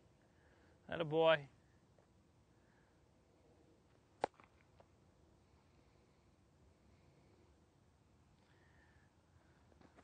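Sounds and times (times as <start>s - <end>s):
quiet outdoor ambience: 0.0s - 10.0s.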